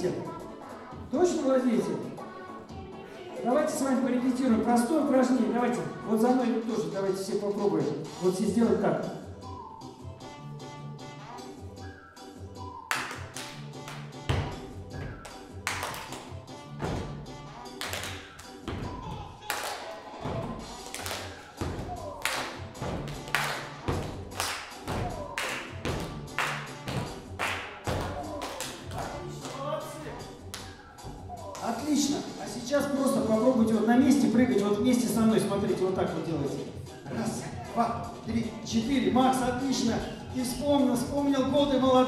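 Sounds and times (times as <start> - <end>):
upbeat backing music: 0.0 - 42.0
people clapping in rhythm: 12.8 - 30.8.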